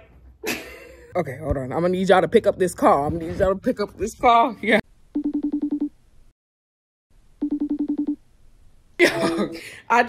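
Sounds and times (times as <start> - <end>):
trilling electronic telephone ring: 7.4 - 8.2.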